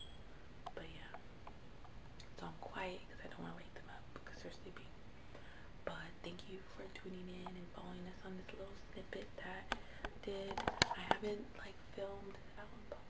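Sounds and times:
woman speaking softly: 0.7 - 1.2, 2.2 - 5.0, 5.8 - 13.0.

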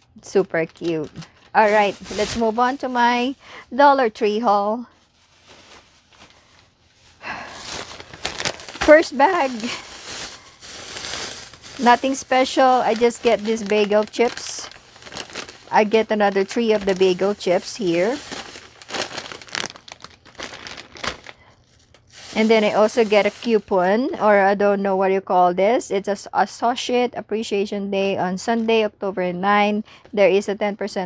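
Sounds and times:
plastic bag rustling and crinkling: 0.2 - 3.7, 4.4 - 23.8
faint handling sounds: 0.3 - 3.4, 4.8 - 23.6.

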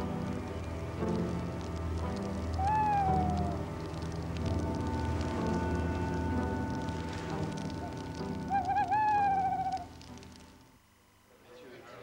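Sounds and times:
campfire crackling: 0.0 - 11.0
owl hooting: 2.5 - 4.0, 7.4 - 10.1.

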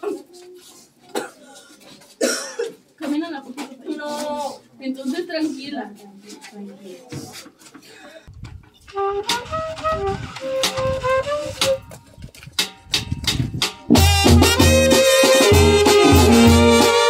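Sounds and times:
band playing slow woodwind melody: 8.9 - 11.9, 13.9 - 17.0
drum beating: 9.0 - 12.0, 12.6 - 17.0.

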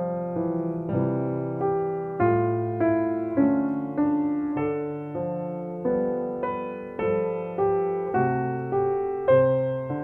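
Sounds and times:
grand piano played gently: 0.0 - 10.0.

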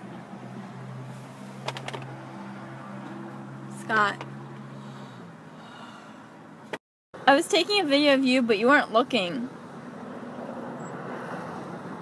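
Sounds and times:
faint breathy background noise: 4.7 - 6.4.

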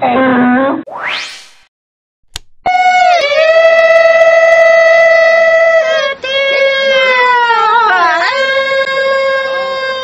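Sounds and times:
short click: 2.3 - 2.7.

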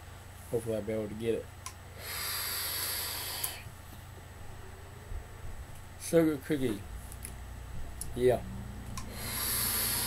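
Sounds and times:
vape hiss of air: 1.9 - 3.7, 9.0 - 10.0.

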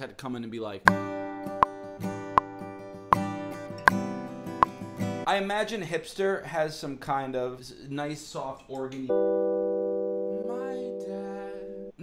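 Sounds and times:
acoustic guitar strummed: 0.9 - 5.2.

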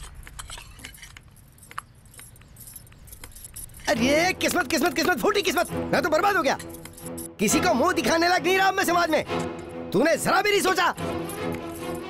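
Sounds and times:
utensils clinking on dishes: 6.4 - 7.3.

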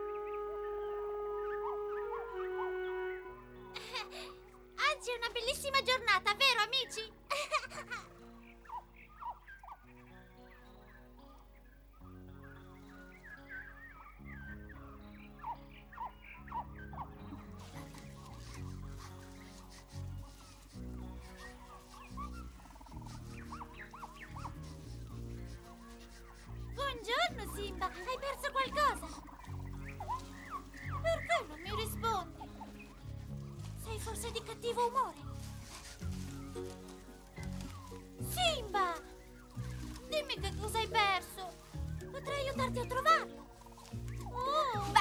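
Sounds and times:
birds chirping and twittering: 0.0 - 45.0
soft music of held chords: 0.0 - 45.0.

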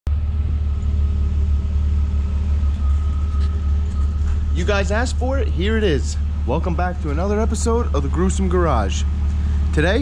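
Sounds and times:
car engine idling: 0.1 - 10.0.

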